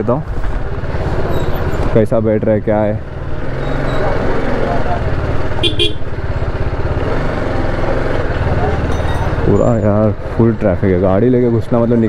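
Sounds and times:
motorcycle engine running: 0.2 - 12.0
vehicle horn toot: 5.6 - 6.1.

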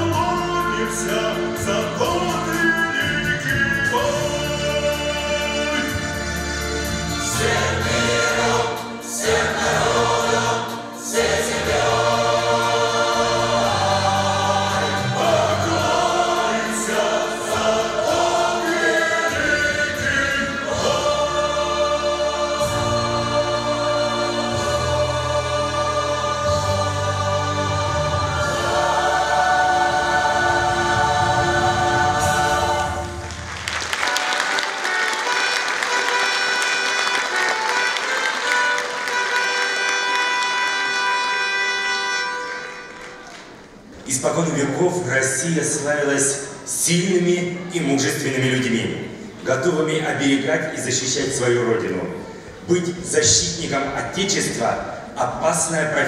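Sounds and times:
instrumental accompaniment: 0.0 - 44.1
choir singing: 0.0 - 49.2
audience applause: 33.1 - 40.7.

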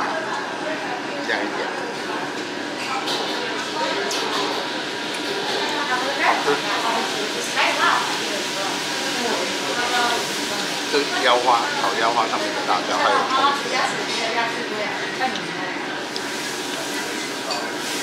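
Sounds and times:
hubbub of voices: 0.0 - 17.8.

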